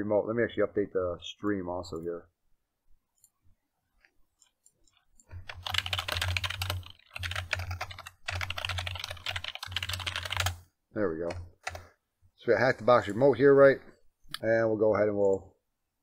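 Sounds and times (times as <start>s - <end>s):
fast typing on computer keyboard: 5.3s - 10.6s, 11.2s - 11.9s.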